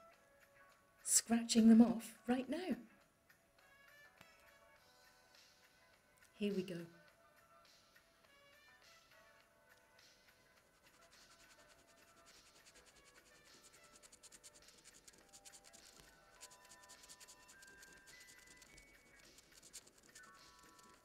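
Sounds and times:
quiet background music: 0:00.0 - 0:21.0
coin scratching scratch card: 0:10.6 - 0:21.0.

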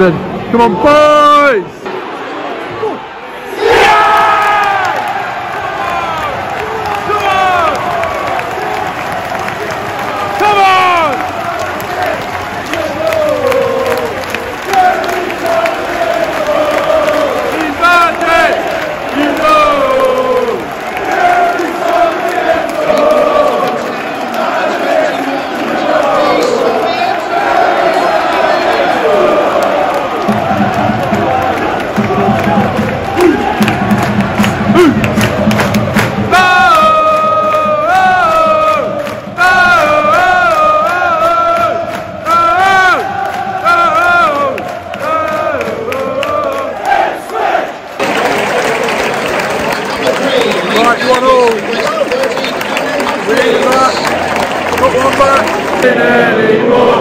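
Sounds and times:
stadium crowd singing and chanting: 0:00.0 - 0:57.0
rhythmic clapping: 0:04.6 - 0:57.0.

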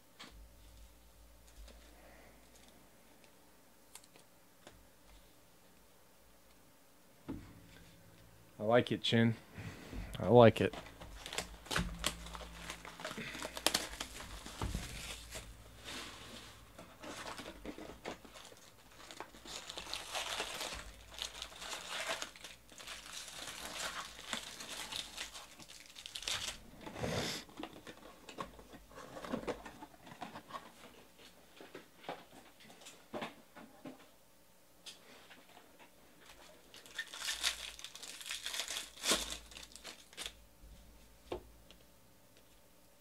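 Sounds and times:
foil packs crinkling: 0:10.7 - 0:26.7, 0:36.2 - 0:40.4
plastic shrink wrap tearing: 0:10.9 - 0:16.2, 0:17.0 - 0:27.3, 0:36.7 - 0:40.4.

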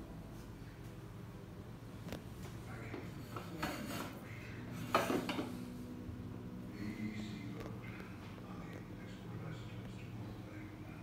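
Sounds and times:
metal nozzle rubbing and scraping: 0:03.2 - 0:04.2.

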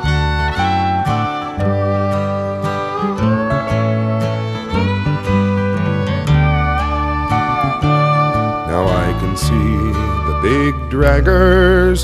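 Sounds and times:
fiddle melody: 0:00.0 - 0:12.0
strummed acoustic guitar: 0:00.0 - 0:12.0.

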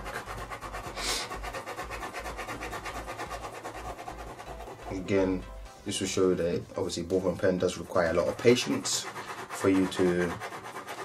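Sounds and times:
pen scratching on paper: 0:00.0 - 0:05.4, 0:07.1 - 0:11.0.

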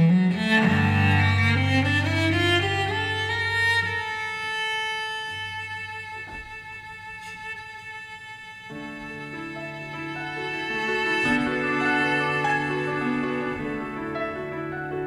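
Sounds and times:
cello playing: 0:00.0 - 0:15.0
piano accompaniment: 0:00.0 - 0:15.0.

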